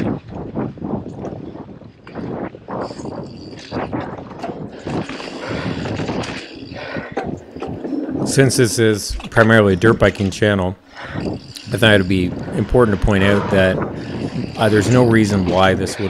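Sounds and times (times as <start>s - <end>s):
wind on microphone: 0.0s - 16.0s
bike rattling over dirt trail: 1.1s - 16.0s.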